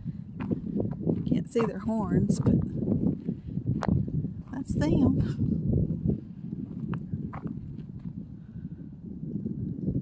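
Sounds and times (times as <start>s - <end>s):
wind rumble on microphone: 0.0s - 10.0s
footsteps on dirt trail: 0.3s - 8.2s.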